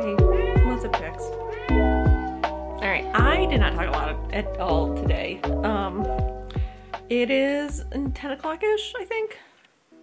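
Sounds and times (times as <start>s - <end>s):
cat meowing: 0.0s - 2.4s
hip-hop music with kick drum: 2.0s - 2.6s.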